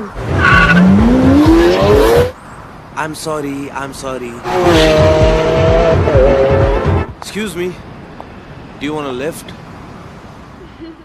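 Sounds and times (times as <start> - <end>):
car engine revving hard: 0.2 - 2.3, 4.5 - 7.0.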